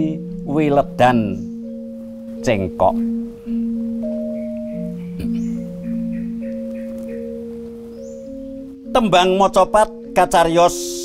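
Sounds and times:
metallophone playing slow melody: 0:00.0 - 0:11.0.

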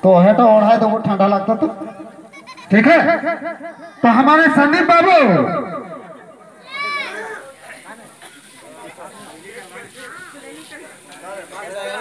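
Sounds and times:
faint crowd chatter: 0:00.0 - 0:12.0.

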